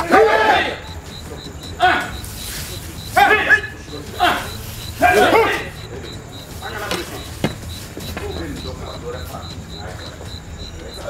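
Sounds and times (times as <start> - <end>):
cricket chirping: 0.0 - 11.0
men shouting: 0.0 - 11.0.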